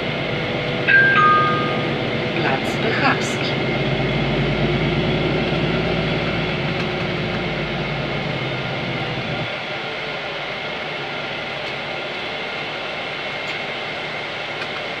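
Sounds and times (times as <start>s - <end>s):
bus cabin rumble: 0.0s - 9.5s
bus diesel engine hum: 0.0s - 15.0s.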